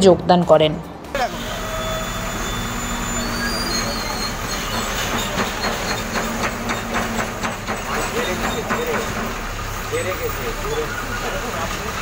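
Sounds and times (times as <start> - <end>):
diesel engine running: 1.1 - 12.0
high metallic squeals: 1.2 - 11.9.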